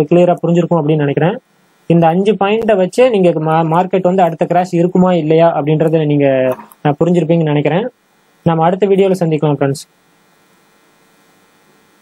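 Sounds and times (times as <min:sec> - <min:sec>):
faint steady hum: 0:00.0 - 0:12.0
low hiss: 0:00.0 - 0:12.0.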